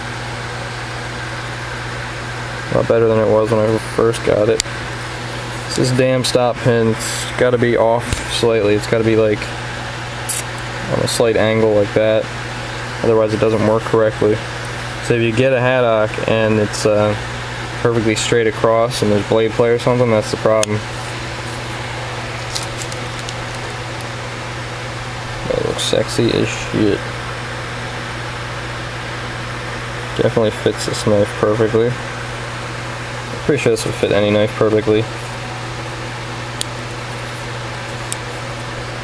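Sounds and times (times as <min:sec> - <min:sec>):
steady low hum with hiss: 0:00.0 - 0:39.0.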